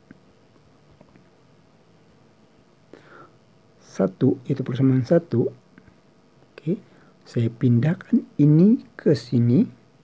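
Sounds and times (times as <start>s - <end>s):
faint steady hum: 0.0s - 10.0s
person speaking: 3.8s - 5.7s, 6.5s - 9.8s.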